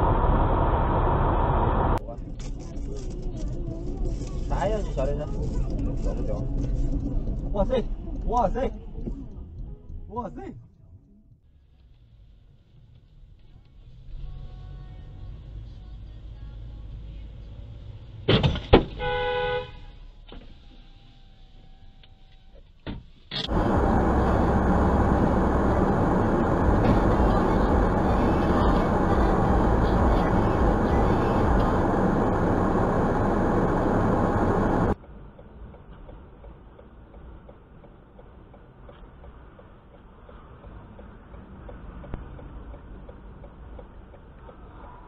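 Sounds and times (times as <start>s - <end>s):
car rumble: 0.0s - 45.0s
car horn: 18.9s - 20.0s
loud steady rushing noise: 23.5s - 35.0s.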